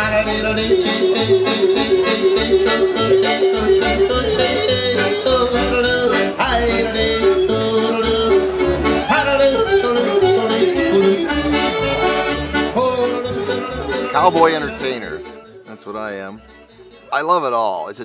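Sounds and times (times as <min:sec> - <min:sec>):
man yodeling: 0:00.0 - 0:11.7, 0:12.6 - 0:15.9
rhythmic bass: 0:00.0 - 0:17.6
piano accordion playing chords: 0:00.0 - 0:18.0.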